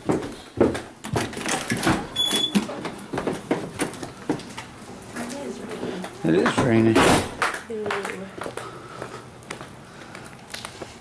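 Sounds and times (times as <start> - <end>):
footsteps: 0.0 - 11.0.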